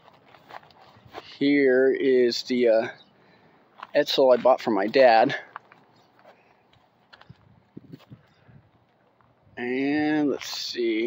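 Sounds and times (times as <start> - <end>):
footsteps on dry grass: 0.0 - 1.8, 3.7 - 9.4.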